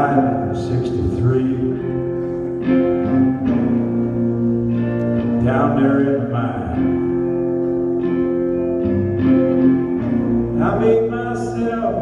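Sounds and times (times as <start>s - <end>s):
country band guitars: 0.0s - 12.0s.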